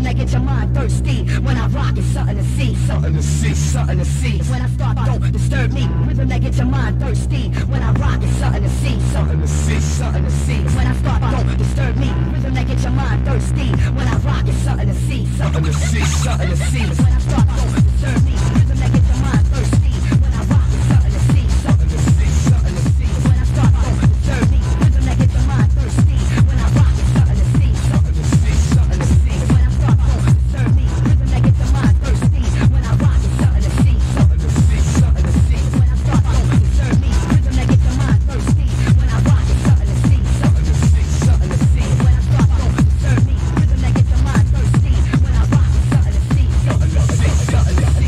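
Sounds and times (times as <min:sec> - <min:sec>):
hardcore techno music: 0:00.0 - 0:48.0
heavy bass: 0:00.0 - 0:48.0
fast kick drum: 0:16.8 - 0:48.0.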